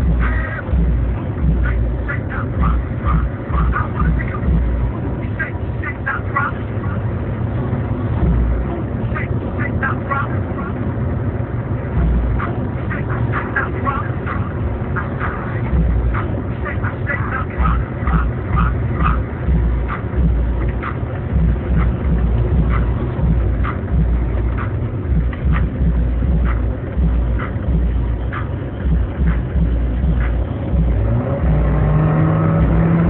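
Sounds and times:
car engine and road rumble: 0:00.0 - 0:33.0.

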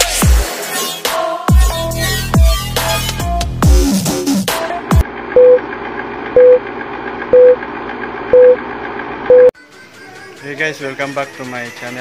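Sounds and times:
short beeps: 0:06.4 - 0:06.6, 0:07.4 - 0:07.6, 0:08.4 - 0:08.6, 0:09.3 - 0:09.5.

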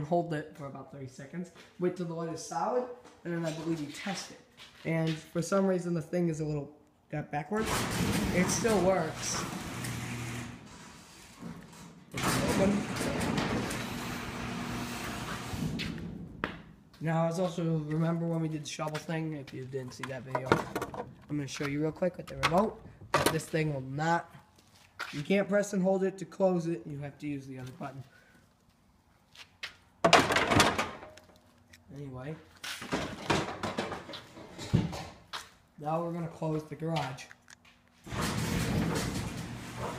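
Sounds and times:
garage door opener click: 0:07.6 - 0:10.7, 0:12.2 - 0:15.8, 0:38.1 - 0:39.9
garage door opener rumble: 0:07.6 - 0:16.3, 0:38.1 - 0:39.9
footsteps scuffing on concrete: 0:16.9 - 0:19.8, 0:24.4 - 0:25.4, 0:27.6 - 0:29.9, 0:31.2 - 0:32.9, 0:35.2 - 0:35.7, 0:36.9 - 0:38.1.

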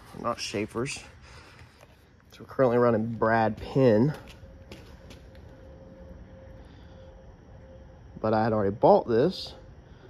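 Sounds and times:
faint low hum: 0:00.0 - 0:10.0
thin steady tone: 0:00.0 - 0:10.0.

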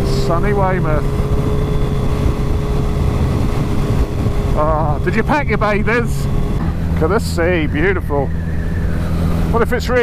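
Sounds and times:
motorcycle engine cruising: 0:00.0 - 0:10.0
wind and road rush: 0:00.0 - 0:10.0.

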